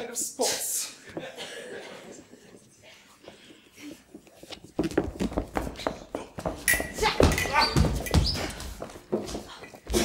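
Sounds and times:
shoes stamping on wooden stage: 4.5s - 10.0s.

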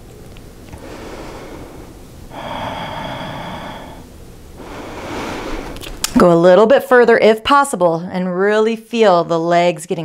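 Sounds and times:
slow deep breathing: 0.7s - 6.0s.

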